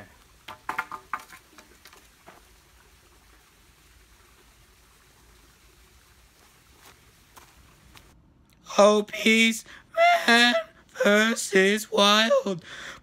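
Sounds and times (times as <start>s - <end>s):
creek trickling over rocks: 0.0s - 8.2s.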